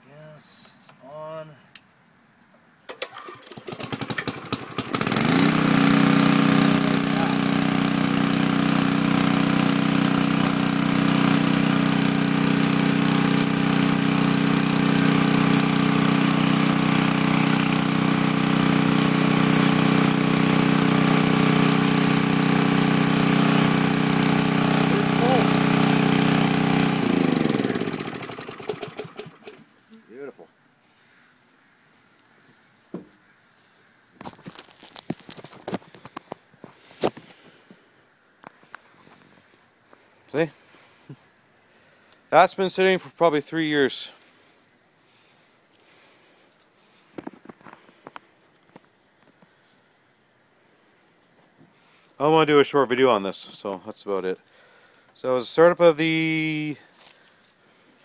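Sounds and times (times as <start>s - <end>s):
portable generator engine running: 3.0s - 29.7s.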